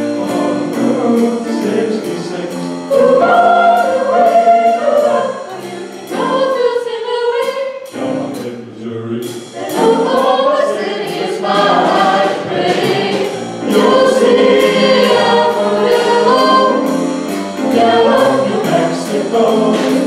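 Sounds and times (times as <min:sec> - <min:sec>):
vocal group singing in harmony: 0:00.0 - 0:20.0
steady beat: 0:07.9 - 0:20.0.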